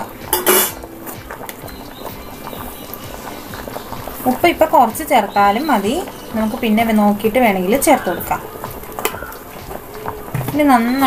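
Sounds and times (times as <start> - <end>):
water bubbling at rolling boil: 0.0 - 11.0
spoon clinking against pot: 0.3 - 0.8.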